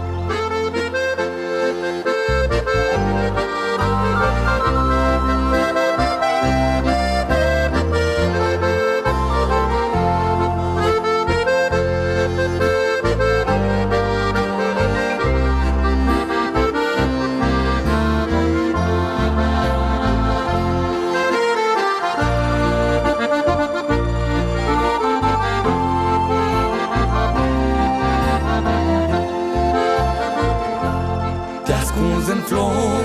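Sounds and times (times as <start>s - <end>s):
accordion melody: 0.0s - 33.0s.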